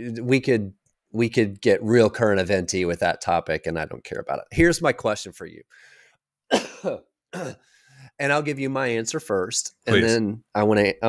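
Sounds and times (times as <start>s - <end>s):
man coughing and clearing throat: 6.5s - 7.7s.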